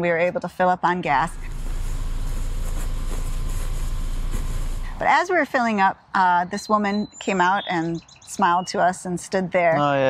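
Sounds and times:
motorcycle engine rumble: 1.2 - 5.1.

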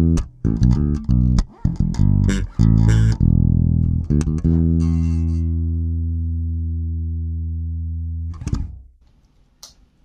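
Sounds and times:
low bass guitar note: 0.0 - 8.7.

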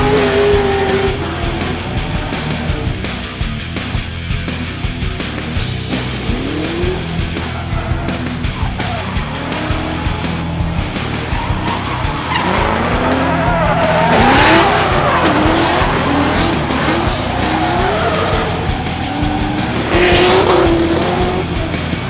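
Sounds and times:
background music: 0.0 - 22.0
car engine revving: 0.0 - 22.0
tyre squeal: 7.3 - 20.4.

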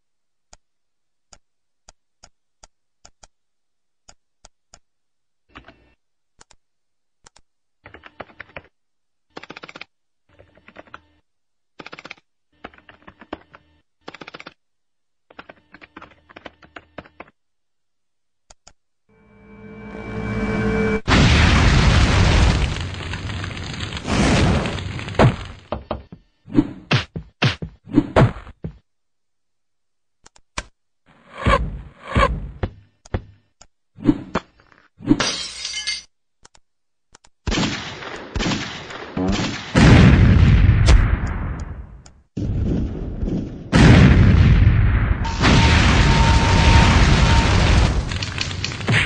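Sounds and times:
click: 1.3 - 3.4, 6.4 - 6.6, 7.2 - 8.6, 18.5 - 18.8, 30.2 - 30.7, 36.4 - 37.4
glass shattering crash: 35.2 - 36.1.

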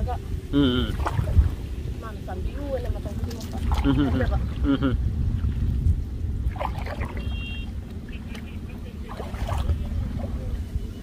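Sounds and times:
canoe paddling through water: 0.0 - 11.0
wind rumble on microphone: 0.0 - 11.0.

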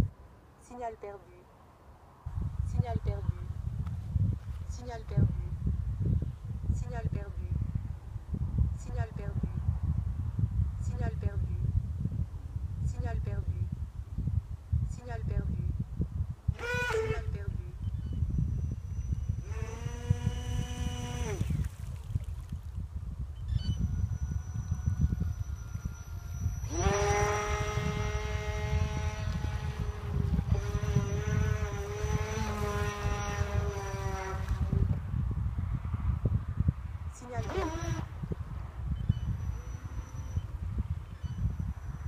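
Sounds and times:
wind rumble on microphone: 0.0 - 0.6, 1.6 - 42.0
electric boat motor whining: 16.5 - 22.3, 23.4 - 35.0, 37.4 - 38.2, 39.0 - 42.0.

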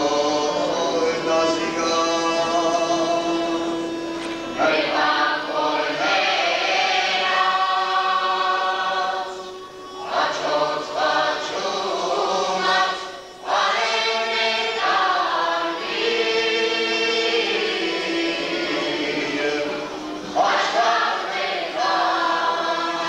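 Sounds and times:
choir singing folk song: 0.0 - 23.0.

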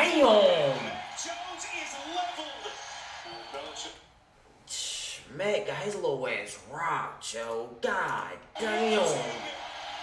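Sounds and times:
football broadcast speech: 0.0 - 9.8.

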